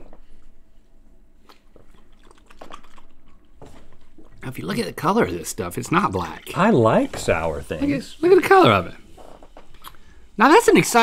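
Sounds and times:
lip smacks and mouth clicks: 1.4 - 4.0, 9.8 - 10.0.

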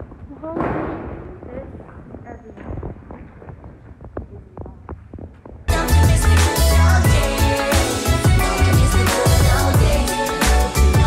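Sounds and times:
loud pop music: 5.7 - 11.0.

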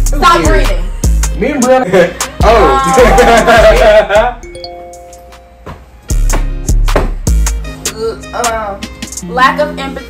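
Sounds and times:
chime of held tones: 4.4 - 5.6.

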